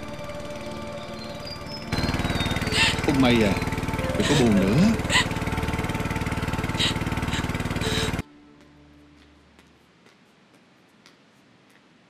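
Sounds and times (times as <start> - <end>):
small boat engine running: 0.0 - 8.2.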